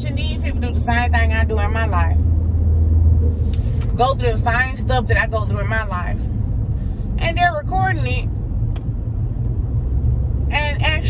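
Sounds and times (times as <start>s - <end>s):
woman speaking: 0.0s - 2.2s, 3.9s - 6.2s, 7.2s - 8.2s, 10.5s - 11.0s
vehicle engine and road rumble: 0.0s - 11.0s.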